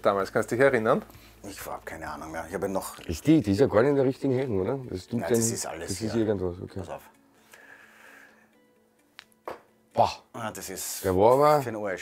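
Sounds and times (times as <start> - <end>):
faint background music: 0.0 - 12.0
dart hitting dartboard: 9.4 - 9.7.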